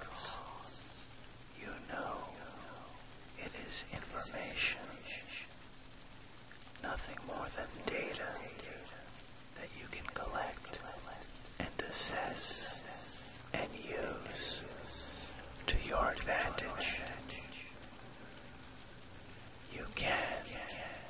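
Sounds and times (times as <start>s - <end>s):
person whispering: 0.0s - 5.6s, 6.8s - 21.0s
faint low hum: 0.0s - 21.0s
rain-like hiss: 0.0s - 21.0s.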